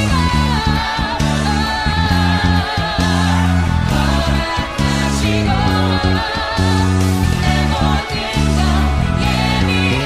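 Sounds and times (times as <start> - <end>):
disco-style worship song: 0.0 - 10.0
electric bass plucked: 0.0 - 10.0.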